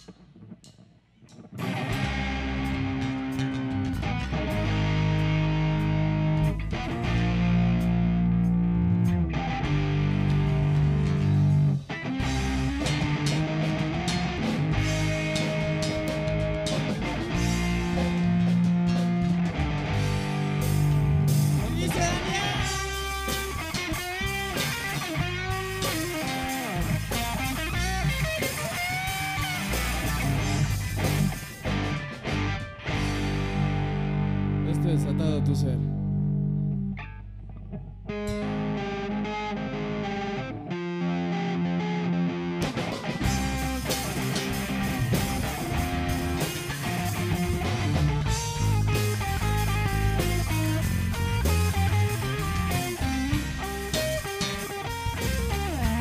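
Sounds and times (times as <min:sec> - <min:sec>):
live rock band playing: 0:01.4 - 0:37.2, 0:38.1 - 0:56.0.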